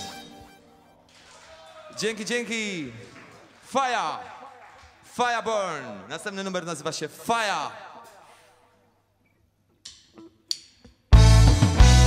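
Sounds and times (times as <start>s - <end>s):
bass guitar: 11.1s - 12.0s
drum kit: 11.1s - 12.0s
electric guitar: 11.2s - 12.0s.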